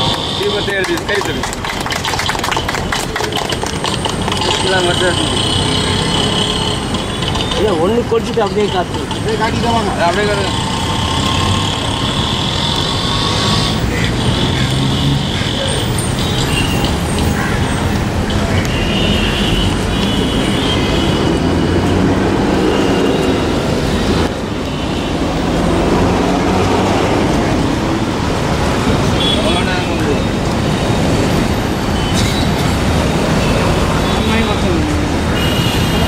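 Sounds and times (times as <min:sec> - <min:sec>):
road traffic: 0:00.0 - 0:36.0.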